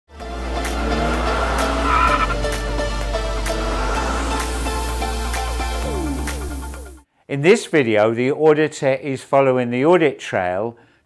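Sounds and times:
electronic music: 0.1 - 7.0.

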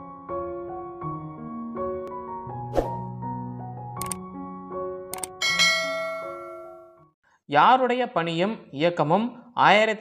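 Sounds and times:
sharp clicks: 4.0 - 4.2, 5.1 - 5.4
bright bell chime: 5.4 - 7.0.

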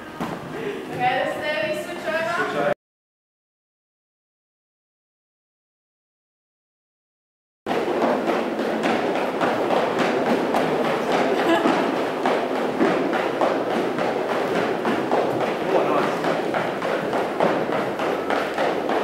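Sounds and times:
indistinct voices in echoing room: 0.0 - 2.8, 9.1 - 19.0
thuds and taps of feet and gear: 7.7 - 19.0.

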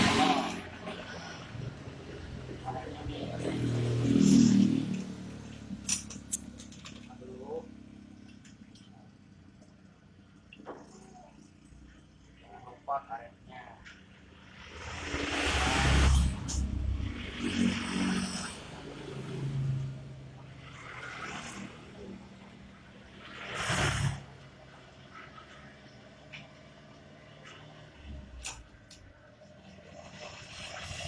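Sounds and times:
vehicles passing by: 0.0 - 31.0.

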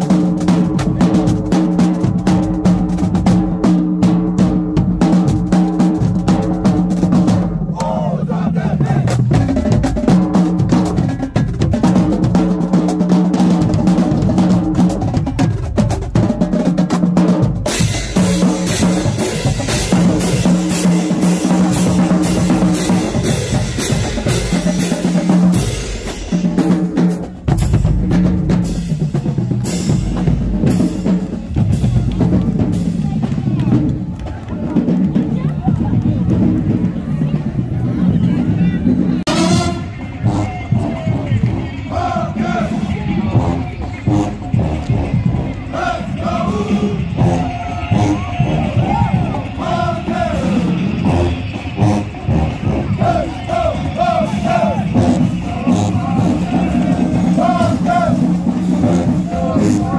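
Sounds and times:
snare drums: 0.0 - 37.4, 39.2 - 59.9
bass drums: 0.0 - 59.9.

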